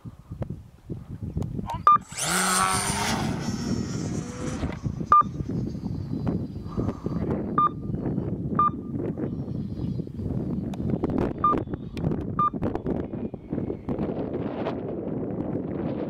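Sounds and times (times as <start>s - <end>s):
wind on microphone: 0.0s - 16.0s
short electronic beeps: 1.8s - 2.1s, 5.1s - 5.4s, 7.6s - 7.9s, 8.6s - 8.9s, 12.4s - 12.6s
high-pitched motor and propeller whine: 2.0s - 7.5s.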